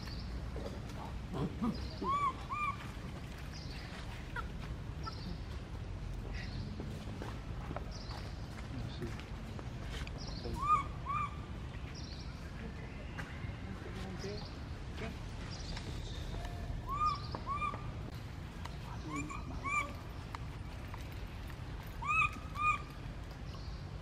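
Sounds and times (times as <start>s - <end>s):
baby monkey high-pitched cries: 1.4s - 2.9s, 10.6s - 11.5s, 16.8s - 18.0s, 19.1s - 20.0s, 22.0s - 22.9s.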